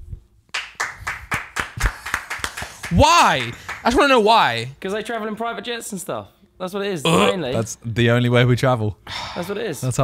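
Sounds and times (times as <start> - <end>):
person clapping hands: 0.5 - 4.0.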